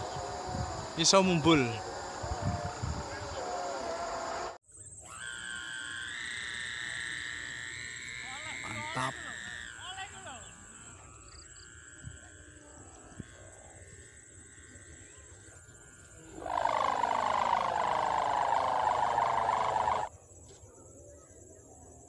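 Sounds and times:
kite hummer droning: 0.0 - 20.1
faint outdoor background: 0.0 - 22.0.

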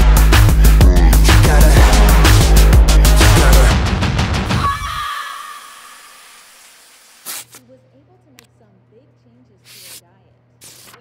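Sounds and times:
aggressive film score: 0.0 - 6.8.

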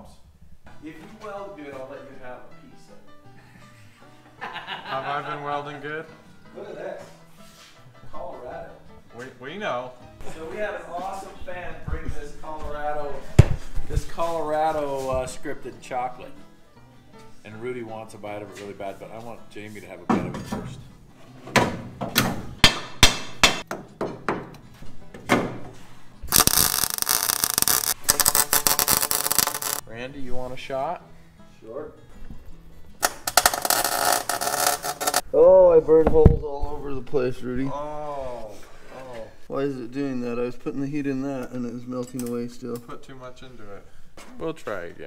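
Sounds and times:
background music: 0.0 - 45.0
welder arc crackling: 26.3 - 29.8, 33.0 - 35.2.

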